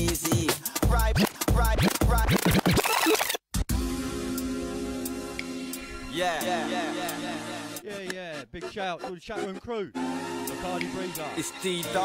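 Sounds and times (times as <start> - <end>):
turntable scratching: 0.0 - 3.7
drum and bass music: 0.0 - 8.5, 10.0 - 12.0.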